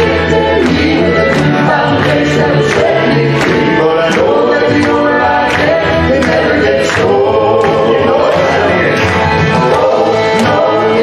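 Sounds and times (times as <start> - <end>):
gospel quartet singing in harmony: 0.0 - 11.0
music with steady beat: 0.0 - 11.0.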